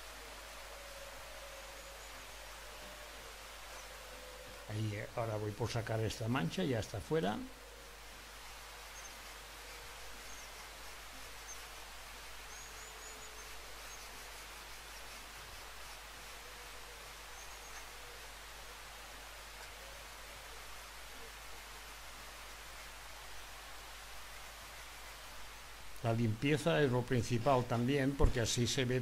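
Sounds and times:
low steady hum: 0.0s - 29.0s
outdoor background hiss: 0.0s - 29.0s.

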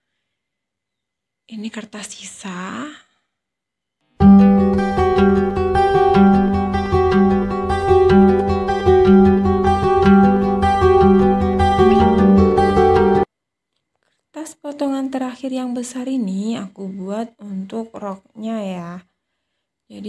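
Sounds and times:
plucked string background music: 4.2s - 13.3s.

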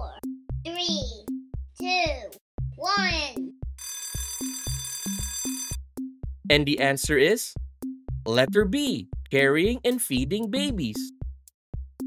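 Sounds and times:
alarm clock ringing: 3.8s - 5.8s.

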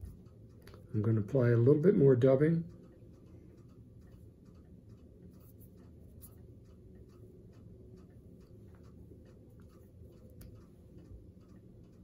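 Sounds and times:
faint light ticks: 0.0s - 12.0s
low room hum: 0.0s - 12.0s.

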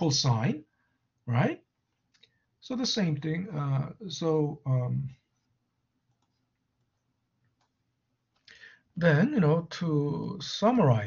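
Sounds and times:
person speaking: 0.0s - 0.6s, 2.6s - 5.3s.

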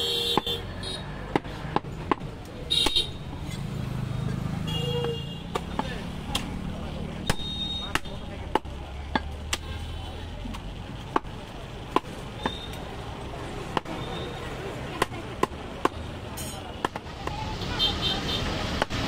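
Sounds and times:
cleaver chopping through meat: 7.2s - 9.6s, 13.7s - 13.9s.

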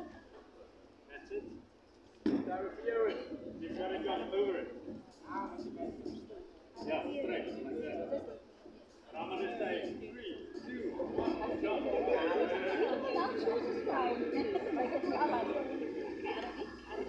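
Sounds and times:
people chattering: 0.0s - 1.6s, 2.2s - 17.0s.

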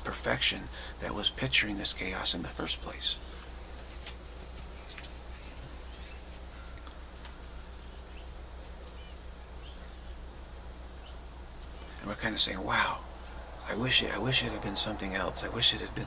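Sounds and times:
steady low hum: 0.0s - 16.0s
small bird chirping: 2.3s - 4.0s, 4.8s - 16.0s.

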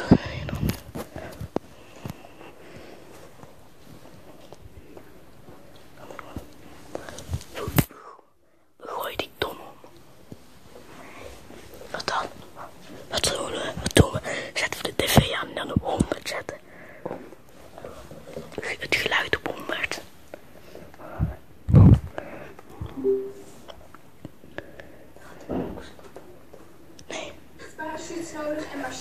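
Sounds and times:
hushed whispering: 8.8s - 9.8s.

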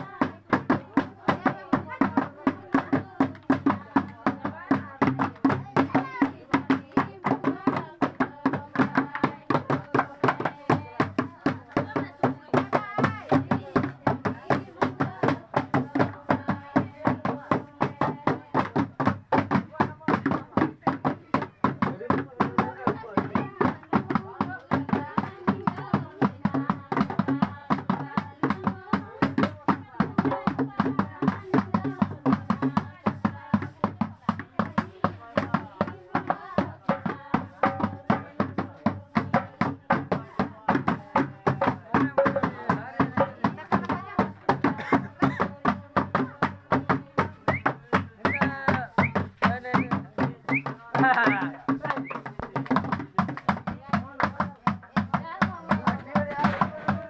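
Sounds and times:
voices calling and singing: 0.0s - 57.0s.

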